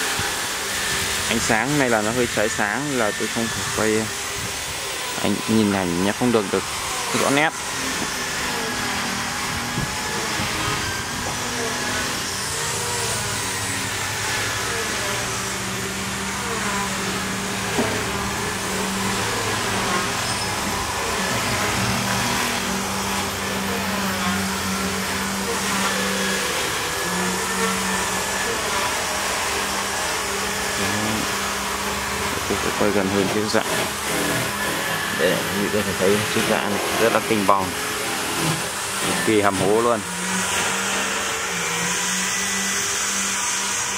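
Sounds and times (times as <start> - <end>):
motor whirring: 0.0 - 43.9
low hum shifting pitch: 30.8 - 31.3.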